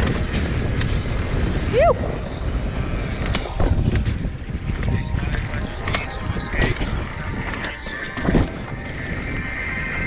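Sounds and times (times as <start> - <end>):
knobby tyres rolling over dirt: 0.0 - 10.0
wind rushing over camera: 0.0 - 10.0.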